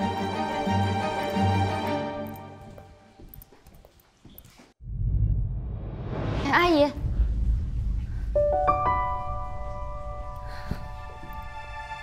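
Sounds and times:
background music: 0:00.0 - 0:03.2, 0:08.4 - 0:12.0
footsteps on hard floor: 0:02.3 - 0:04.8.

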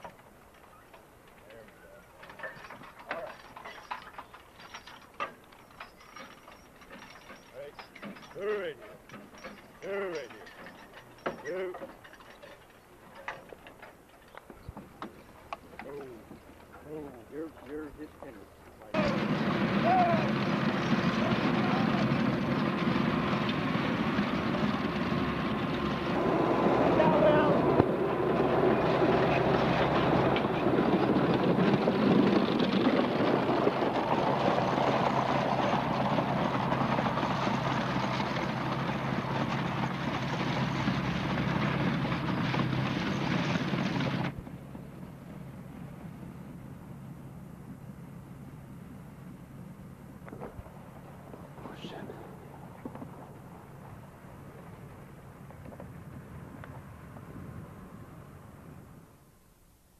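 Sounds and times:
horse harness clicks and clanks: 0:00.0 - 0:19.2
manure spreader clatter and rumble: 0:00.0 - 0:57.7.

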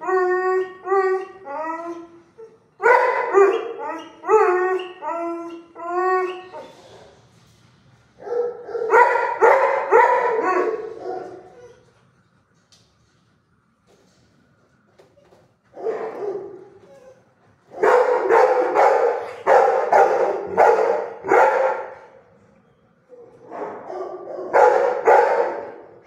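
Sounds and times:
dog barking high-pitched: 0:02.8 - 0:04.9, 0:08.2 - 0:11.7, 0:15.8 - 0:16.6, 0:17.8 - 0:22.0, 0:23.5 - 0:25.8.

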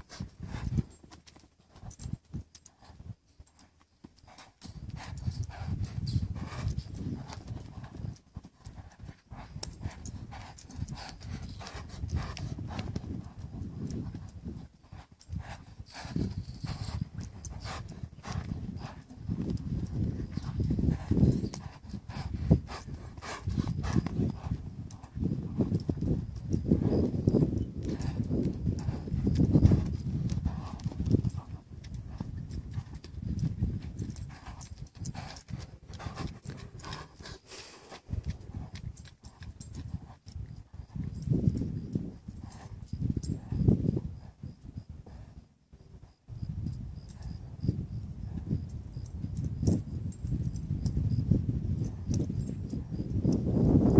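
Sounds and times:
hoofbeats on sand: 0:00.0 - 0:53.9.

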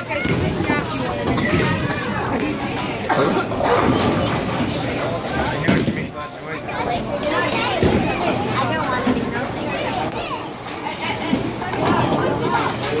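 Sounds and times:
hubbub of overlapping voices: 0:00.0 - 0:13.0.

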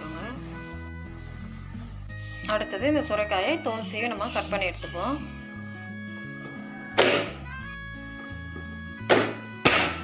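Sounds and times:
background music: 0:00.0 - 0:10.0
vegetable chopper lid thunks: 0:07.0 - 0:07.4, 0:09.1 - 0:10.0.

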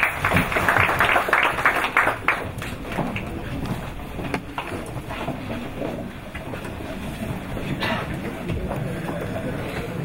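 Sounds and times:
low rumbling room noise: 0:00.0 - 0:10.0.

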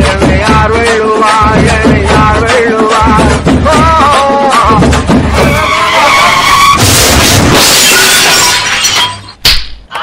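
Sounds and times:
loud noisy sound effect: 0:05.2 - 0:08.6
sharp hit: 0:06.5 - 0:09.4.

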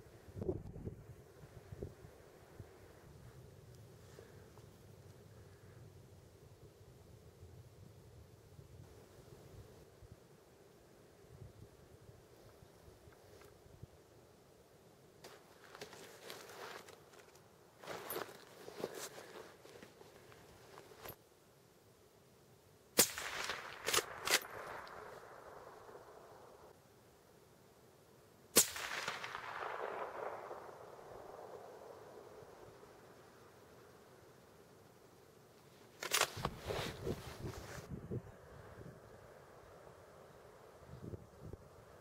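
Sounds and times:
clothing rustling: 0:15.2 - 0:21.2, 0:35.9 - 0:37.9
rifle clicks and knocks: 0:23.7 - 0:25.0, 0:36.0 - 0:36.6
scraping and rustling: 0:35.8 - 0:37.9.

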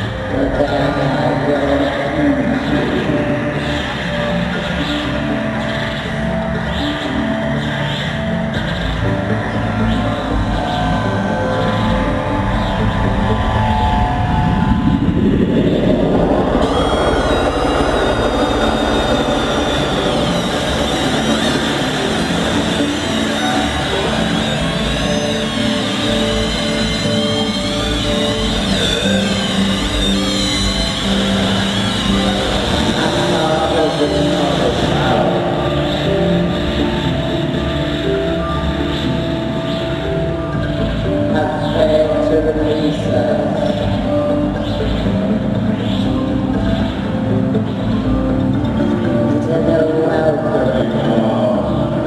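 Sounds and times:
droning synthesizer tones: 0:00.0 - 0:52.0
rising noisy sweep: 0:00.0 - 0:52.0
warbling high tones: 0:00.0 - 0:52.0.

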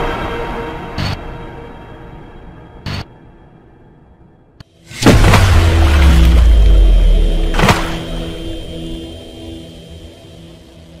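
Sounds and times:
low rumble: 0:02.1 - 0:10.2.

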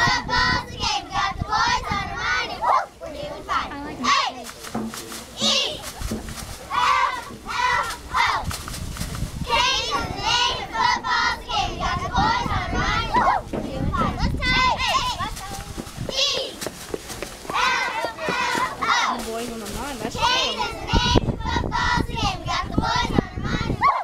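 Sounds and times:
wind rumble on microphone: 0:00.0 - 0:03.8, 0:05.4 - 0:24.0
girls chattering and calling out: 0:00.0 - 0:08.6, 0:09.3 - 0:24.0.

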